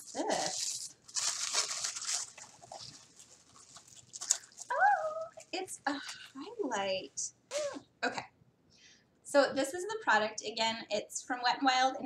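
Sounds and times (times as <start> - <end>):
plastic wrapping crinkling: 0.0 - 6.6.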